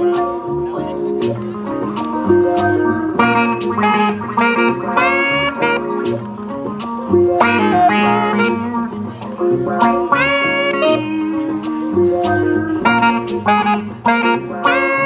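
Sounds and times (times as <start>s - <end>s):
picked guitar chords: 0.0s - 15.0s
saxophone melody: 0.0s - 15.0s.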